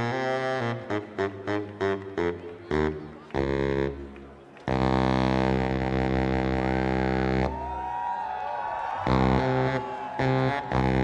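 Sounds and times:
baritone saxophone playing: 0.0 - 7.6, 9.0 - 11.0.

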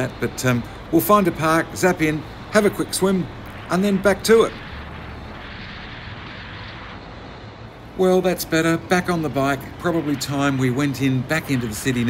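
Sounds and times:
motorcycle road noise: 0.0 - 12.0
wind rush: 0.0 - 12.0.

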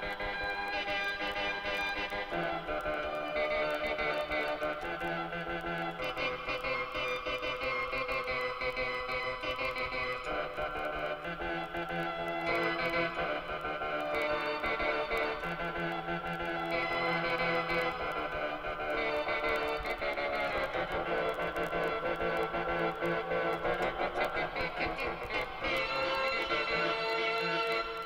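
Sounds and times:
electronic keyboard playing: 0.0 - 28.0.

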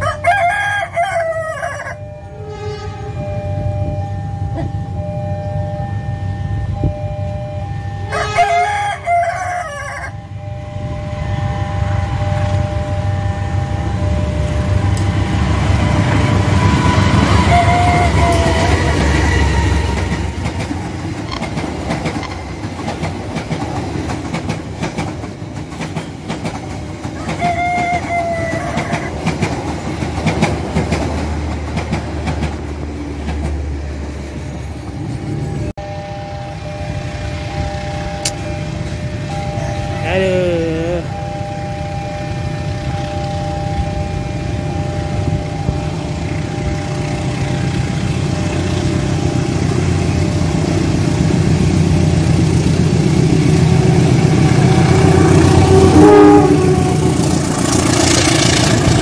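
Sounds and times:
rooster crowing: 0.0 - 2.9, 8.1 - 10.3, 16.6 - 20.2, 27.2 - 29.4
diesel train passing: 0.0 - 59.0.

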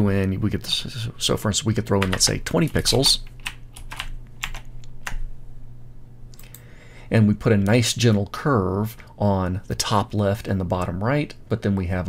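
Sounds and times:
keyboard typing: 2.0 - 5.2.

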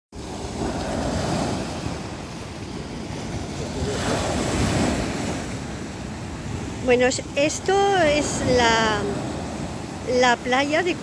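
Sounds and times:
sea waves breaking on pebble beach: 0.2 - 10.0.

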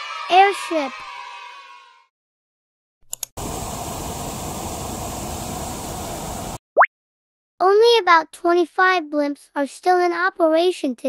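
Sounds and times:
airship rushing noise: 3.4 - 6.6.

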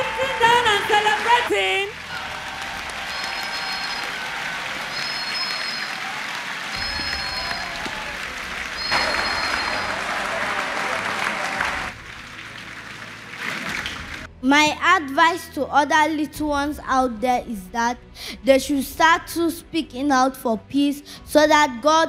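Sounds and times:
congregation clapping: 0.0 - 14.3.

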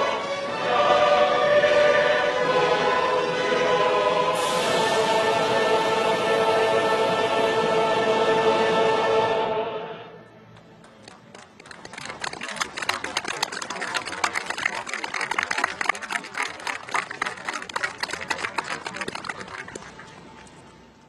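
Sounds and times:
large crowd applauding: 10.6 - 20.8.

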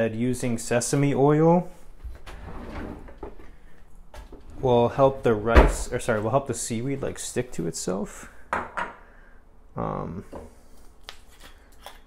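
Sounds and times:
kitchen drawer opening: 2.3 - 3.4.

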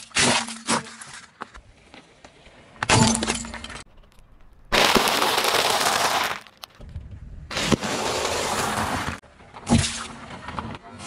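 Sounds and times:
dry noodles crunching under tyre: 4.0 - 6.8.

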